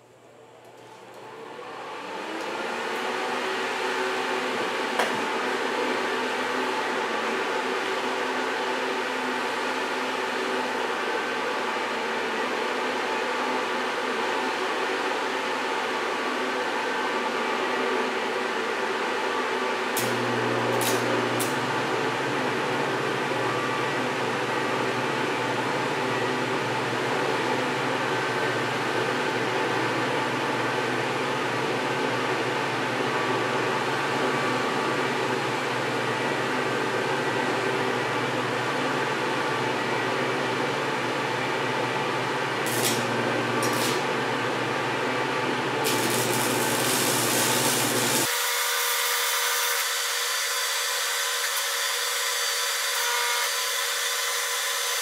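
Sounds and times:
small blower fan running: 0:00.0 - 0:55.0
stick welding: 0:42.6 - 0:44.1, 0:45.8 - 0:54.0.

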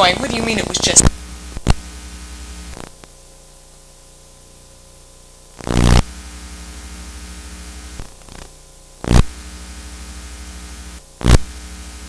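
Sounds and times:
electrical hum: 0:00.0 - 0:12.0
tape hiss: 0:00.0 - 0:12.0.

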